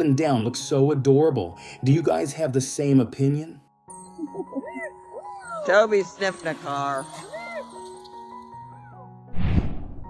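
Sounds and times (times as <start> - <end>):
background music soft held notes: 0.0 - 10.0
dog whimpering: 4.3 - 6.2.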